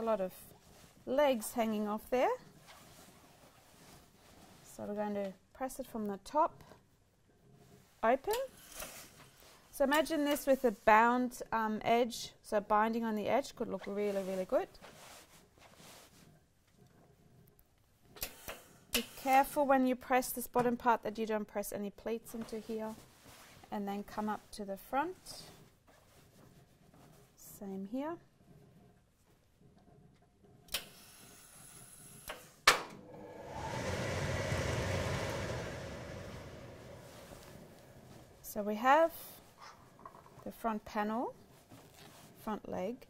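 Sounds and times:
rush of air: 33.2 - 38.2
fabric rustling: 33.5 - 38.5.

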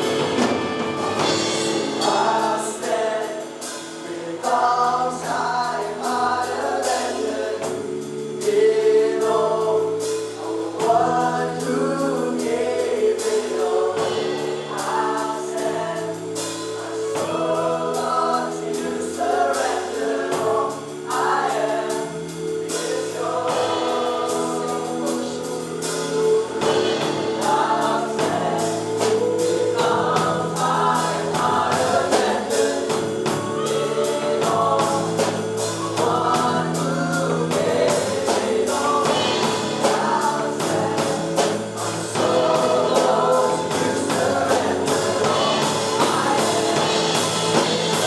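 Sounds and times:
worship band playing: 0.0 - 48.0
man singing: 23.3 - 48.0.

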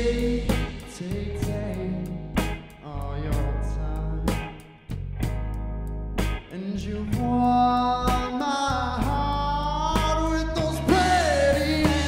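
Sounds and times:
blues band playing live: 0.0 - 12.0.

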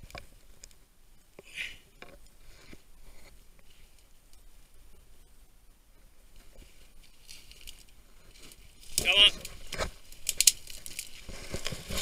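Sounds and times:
dry undergrowth crackling and rustling: 5.8 - 12.0.

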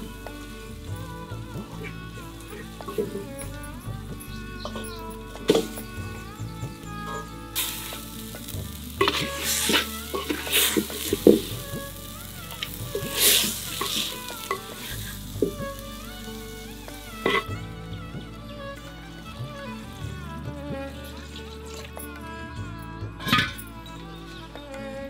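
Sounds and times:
wooden spatula scraping a pot: 7.1 - 11.9
chicken sizzling in a pot: 7.1 - 17.5.

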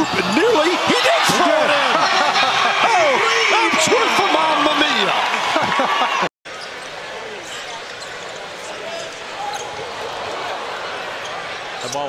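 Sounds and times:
commentator shouting: 0.0 - 5.2
crowd murmur: 6.9 - 11.9.

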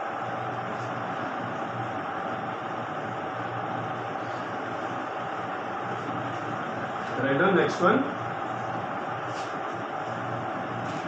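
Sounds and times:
faint low machine hum: 0.0 - 11.0.

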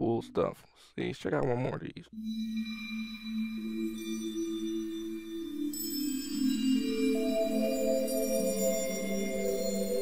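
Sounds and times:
synthesizer bell notes: 2.2 - 10.0.

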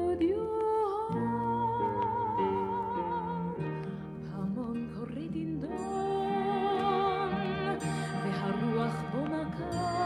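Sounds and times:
instrumental accompaniment: 5.6 - 10.0.

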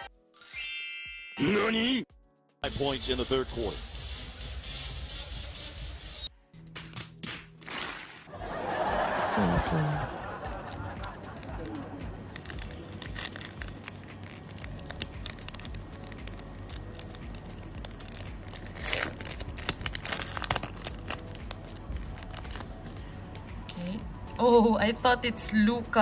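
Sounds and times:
foil wrapper tearing open: 10.4 - 23.1
foil wrapper crinkling: 10.4 - 23.5.

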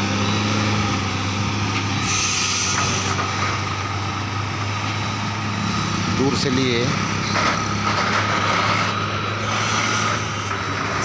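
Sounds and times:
truck diesel engine droning: 0.0 - 11.0
air brakes hissing: 2.0 - 3.2.

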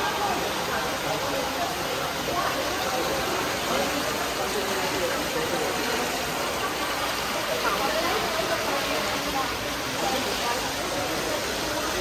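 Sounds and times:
faint voices: 0.0 - 12.0
water rushing in pool: 0.0 - 12.0.

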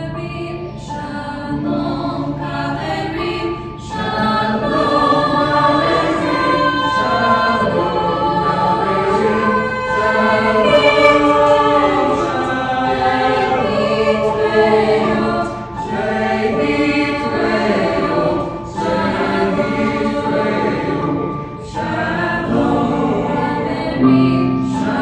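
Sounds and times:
mixed choir singing: 0.8 - 25.0.

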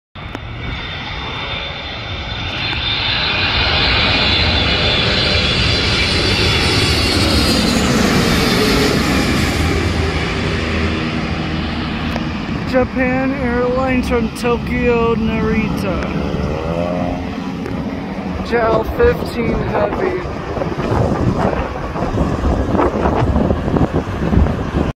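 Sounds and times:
jet airliner roaring overhead: 0.2 - 24.9.

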